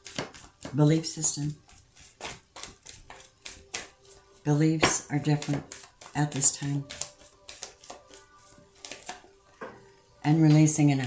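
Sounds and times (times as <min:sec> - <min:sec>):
cards clicking and tapping: 0:00.0 - 0:00.8, 0:01.7 - 0:04.0, 0:04.8 - 0:08.2, 0:08.8 - 0:09.8.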